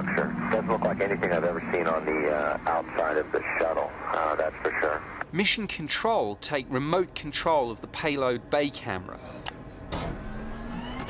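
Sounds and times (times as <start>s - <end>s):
faint rising whine: 0.0s - 5.3s
low steady hum: 0.0s - 10.9s.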